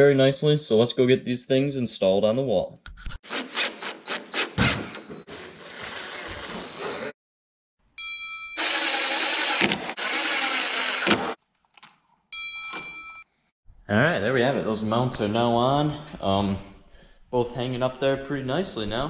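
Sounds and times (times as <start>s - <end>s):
impact driver driving screws: 8.6s - 11.4s.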